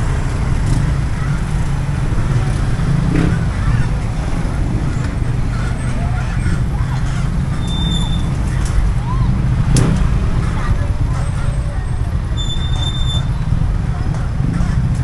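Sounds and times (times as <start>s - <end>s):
vehicles passing close by: 0.0s - 15.0s.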